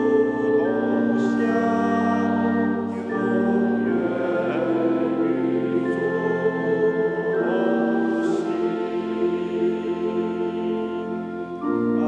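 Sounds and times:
congregation singing a hymn: 0.0 - 12.0
organ accompaniment: 0.0 - 12.0.

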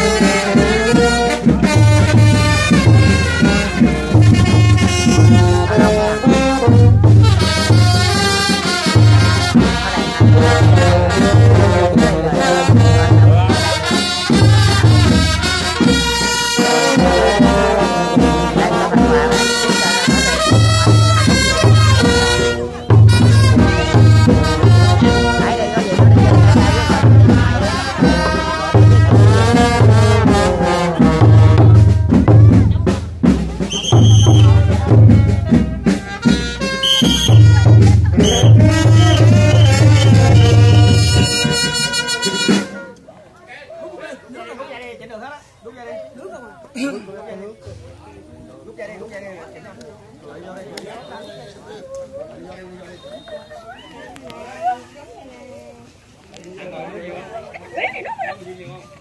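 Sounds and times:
heavy low drum pulses: 0.0 - 42.0
brass band playing: 0.0 - 43.1.

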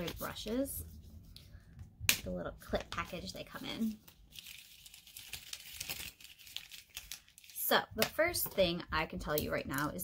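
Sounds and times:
plastic packaging crinkling: 2.9 - 7.7.

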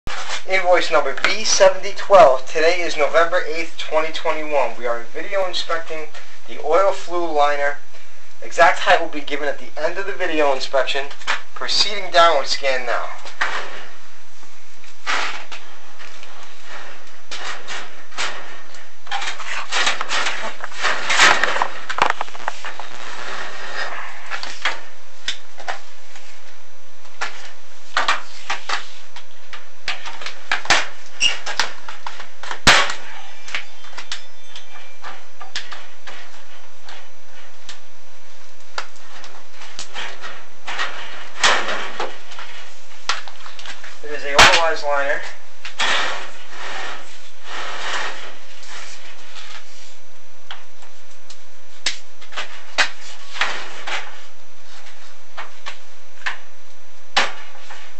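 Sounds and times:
camera cable knocking and scraping: 21.4 - 22.9.

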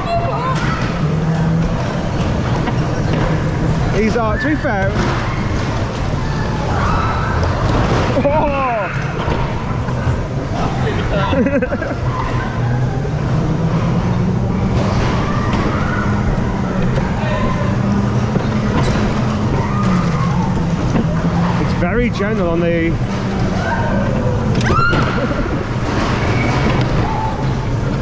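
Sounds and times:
dodgem car rumble: 0.0 - 28.0
steady low hum: 0.0 - 28.0.

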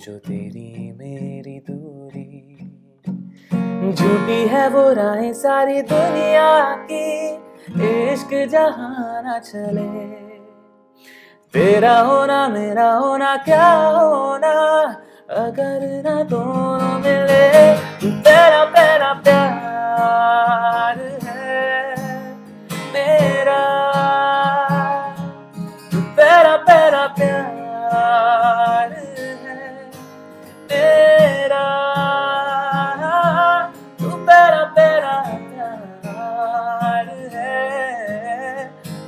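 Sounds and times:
man singing with vibrato: 0.0 - 2.7, 3.5 - 39.0
strummed acoustic guitar: 0.0 - 39.0.

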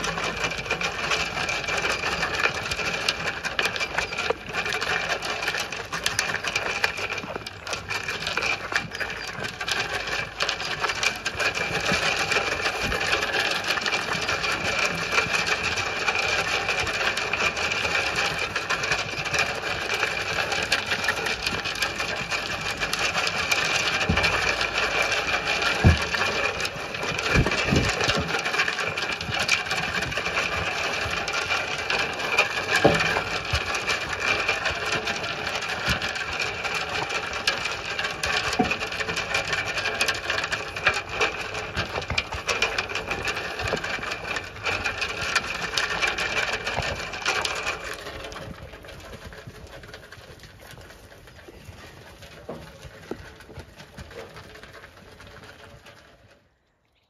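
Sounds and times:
sheep chewing feed: 0.0 - 57.0.

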